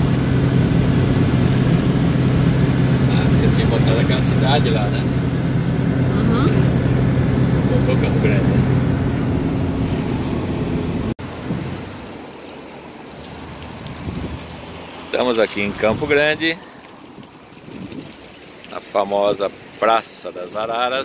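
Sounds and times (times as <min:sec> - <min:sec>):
engine drone: 0:00.0 - 0:12.3
road and wind noise: 0:00.0 - 0:21.0.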